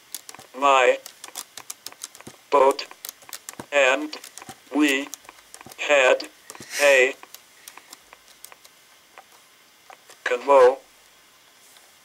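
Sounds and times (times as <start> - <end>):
quick sharp clicks: 0.0 - 8.7.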